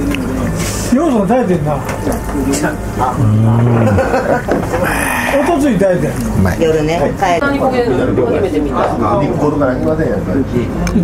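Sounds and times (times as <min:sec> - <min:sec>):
bar chatter: 0:00.0 - 0:11.0
man humming: 0:03.0 - 0:05.6.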